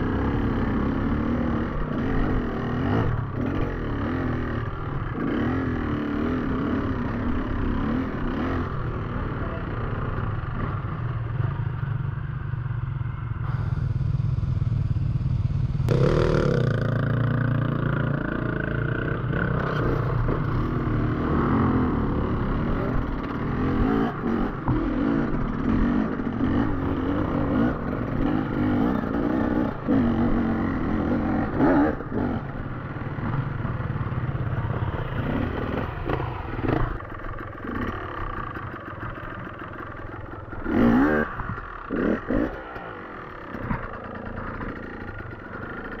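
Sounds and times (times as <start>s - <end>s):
dirt bike engine revving: 13.4s - 34.2s, 34.8s - 46.0s.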